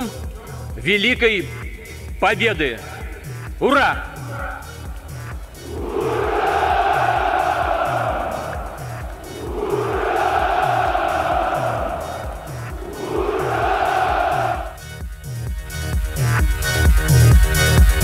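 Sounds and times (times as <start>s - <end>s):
electronic music beat: 5.2s - 14.9s
soldiers shouting in unison: 5.6s - 14.8s.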